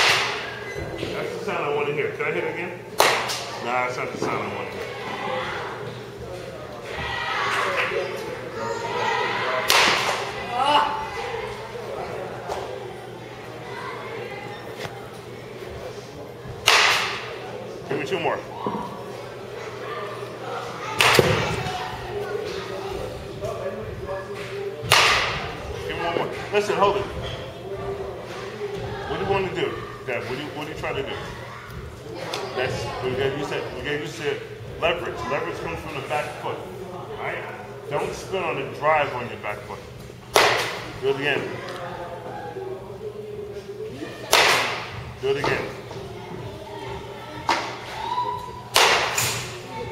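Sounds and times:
baseball bat cracking against ball: 0.0 - 0.5, 3.0 - 3.5, 9.6 - 10.3, 16.6 - 17.4, 21.0 - 21.6, 24.8 - 25.5, 40.3 - 40.9, 44.3 - 45.6, 48.7 - 49.5.

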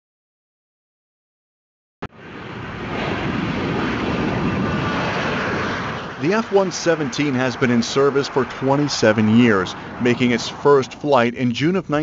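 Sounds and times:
jet engines at takeoff: 2.1 - 12.0.

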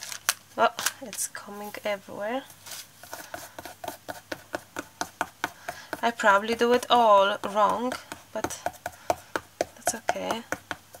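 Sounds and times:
fingertips tapping on canvas: 3.0 - 11.0.

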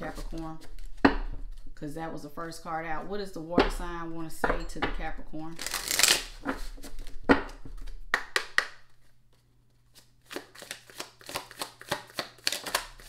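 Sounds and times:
cards being shuffled: 5.6 - 13.0.

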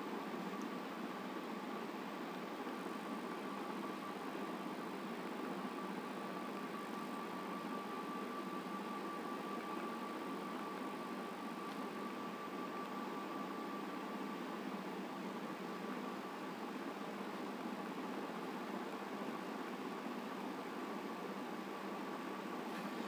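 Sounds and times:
faint high whine: 0.0 - 23.0
room noise hiss: 0.0 - 23.0.

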